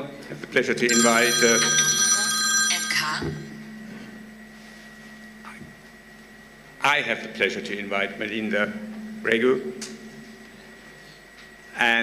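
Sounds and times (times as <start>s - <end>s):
low steady hum: 0.8s - 12.0s
high electronic ringing tone: 0.9s - 4.5s.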